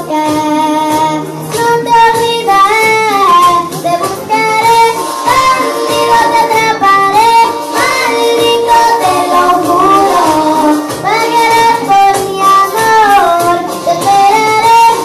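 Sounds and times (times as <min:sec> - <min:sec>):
girl singing into microphone: 0:00.0 - 0:15.0
recorded music backing track: 0:00.0 - 0:15.0.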